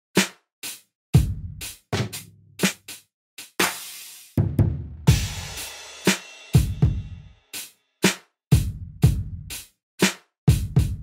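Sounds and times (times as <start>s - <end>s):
hip-hop drum beat: 0.1s - 11.0s.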